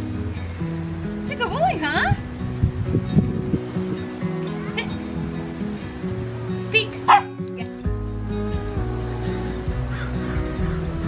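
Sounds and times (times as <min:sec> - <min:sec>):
background music sustained notes: 0:00.0 - 0:11.0.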